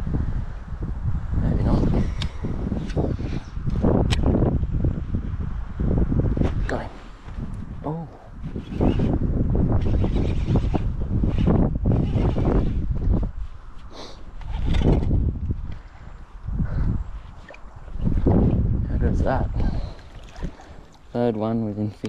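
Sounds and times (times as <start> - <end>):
microphone handling noise: 0.0 - 20.9
rumbling wind on microphone: 0.0 - 22.0.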